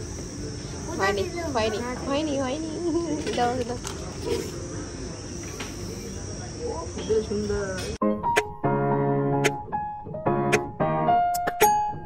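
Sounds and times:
faint voices: 0:00.0 - 0:08.0
insects droning: 0:00.0 - 0:08.0.

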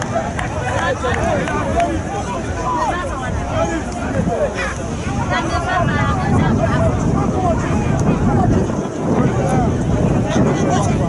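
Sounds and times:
people talking and shouting: 0:00.0 - 0:11.0
wind on microphone: 0:00.0 - 0:11.0.

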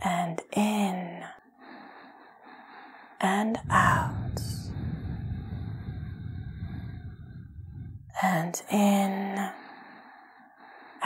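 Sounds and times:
faint breathing: 0:00.8 - 0:11.0.

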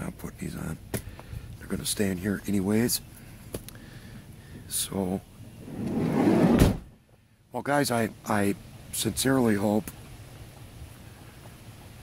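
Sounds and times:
car door thud: 0:06.4 - 0:06.9.

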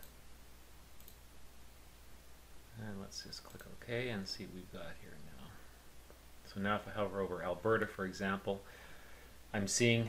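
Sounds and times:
low steady hum: 0:00.0 - 0:10.0
computer mouse click: 0:01.0 - 0:01.2, 0:03.4 - 0:03.8.

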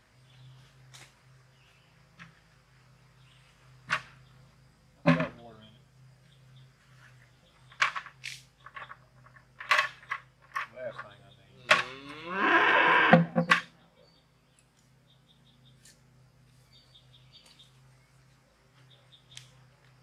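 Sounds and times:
drawn-out pitched call: 0:11.2 - 0:13.4.

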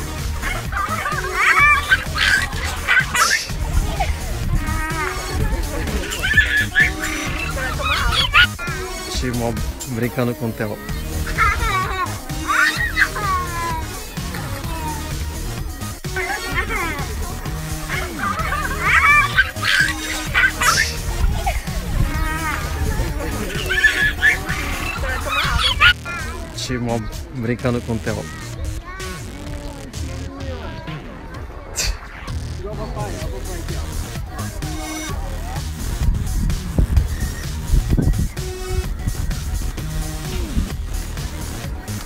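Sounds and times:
background music: 0:00.0 - 0:42.0
small child squealing with laughter: 0:00.4 - 0:08.8, 0:11.2 - 0:13.8, 0:16.2 - 0:17.1, 0:17.9 - 0:26.4.

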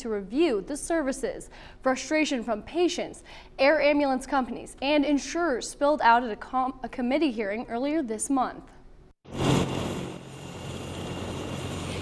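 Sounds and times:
helicopter rotor hum: 0:09.3 - 0:12.0.

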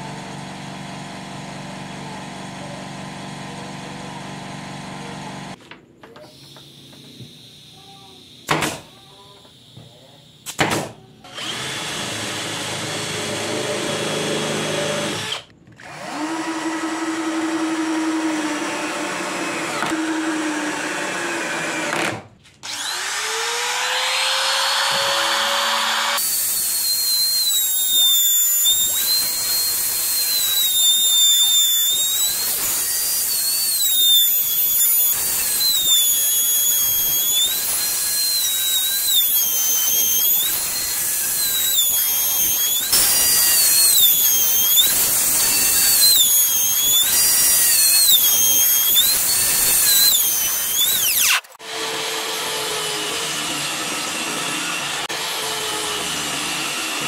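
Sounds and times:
router whining cutting wood: 0:11.3 - 0:57.0
cordless drill driving screws: 0:24.0 - 0:57.0.

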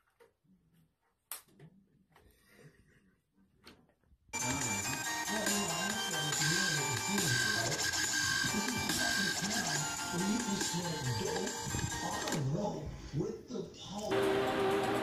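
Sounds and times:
loud music from laptop: 0:04.4 - 0:12.6, 0:14.1 - 0:15.0.

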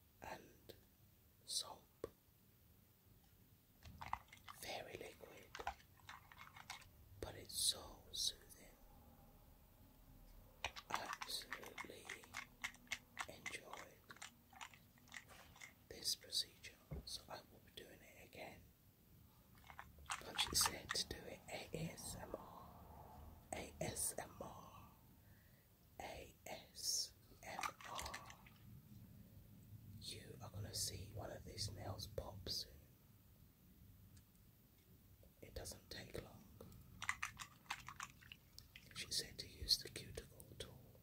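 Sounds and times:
person whispering: 0:00.2 - 0:00.8, 0:01.5 - 0:02.2, 0:04.6 - 0:05.8, 0:06.6 - 0:08.9, 0:10.7 - 0:18.7, 0:20.1 - 0:25.0, 0:26.0 - 0:28.6, 0:30.0 - 0:32.9, 0:35.4 - 0:36.8, 0:38.8 - 0:41.0
wet clicks and crackles in water: 0:36.7 - 0:39.0.

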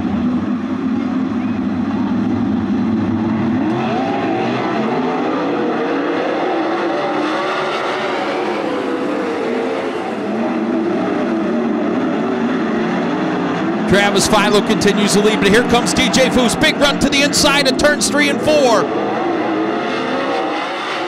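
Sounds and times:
racing car engines: 0:00.0 - 0:21.0.

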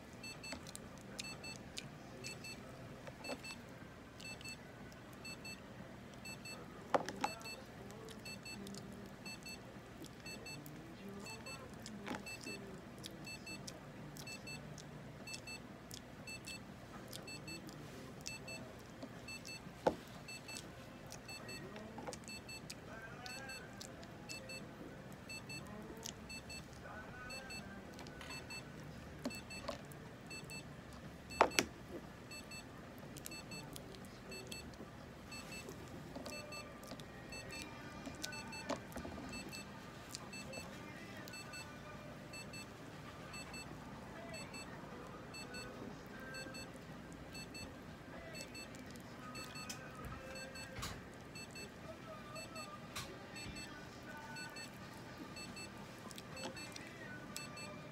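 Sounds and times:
faint electronic beep: 0:04.2 - 0:04.6, 0:05.2 - 0:05.6, 0:06.2 - 0:07.6, 0:08.2 - 0:09.6, 0:12.2 - 0:14.6, 0:24.3 - 0:24.7, 0:36.3 - 0:38.7, 0:39.3 - 0:42.7, 0:43.3 - 0:46.7, 0:47.3 - 0:54.7, 0:55.3 - 0:55.8, 0:56.4 - 0:57.9.

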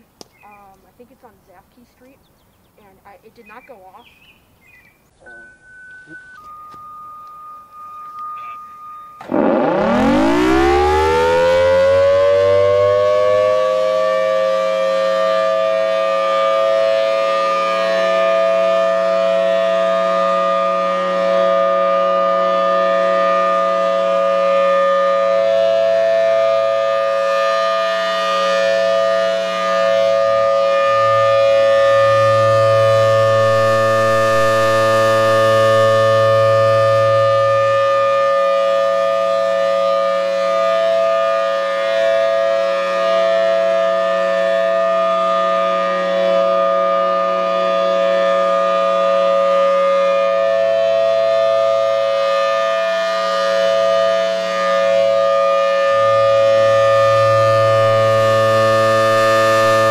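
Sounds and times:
outdoor warning siren: 0:05.3 - 0:59.9.

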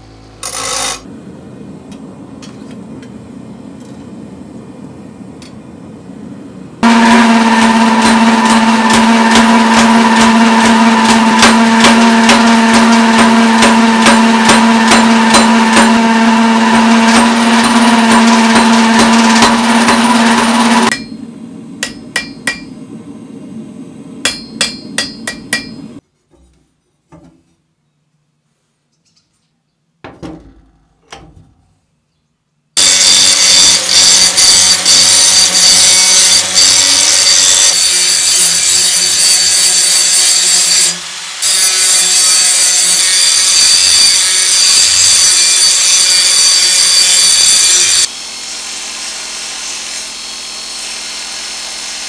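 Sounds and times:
machine hum: 0:00.0 - 0:26.0
sharp metal strikes: 0:06.8 - 0:22.8, 0:24.2 - 0:26.0
power hammer blows: 0:06.8 - 0:26.0.

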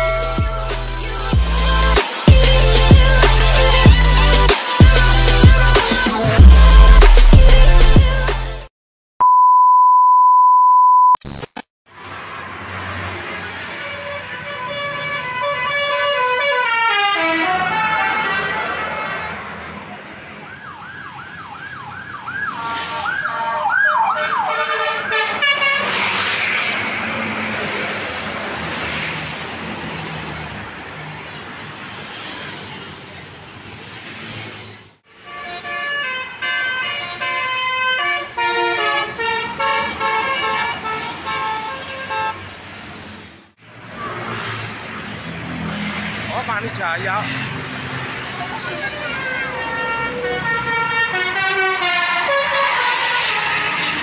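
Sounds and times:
road traffic: 0:00.0 - 0:08.6, 0:11.2 - 0:54.0
musical air horns playing tunes: 0:13.8 - 0:19.2, 0:22.6 - 0:26.0, 0:35.2 - 0:42.4, 0:48.9 - 0:54.0.

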